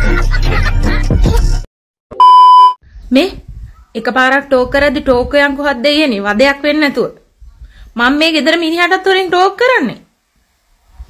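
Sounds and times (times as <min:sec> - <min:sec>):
loud test-tone beep: 0:02.1 - 0:02.8.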